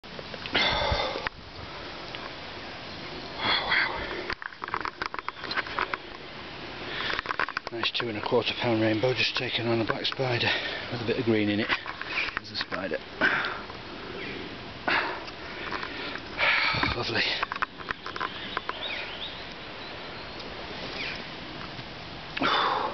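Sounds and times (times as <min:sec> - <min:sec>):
background hiss: 0:00.0 - 0:22.9
small bird chirping: 0:05.0 - 0:06.1, 0:17.6 - 0:21.3.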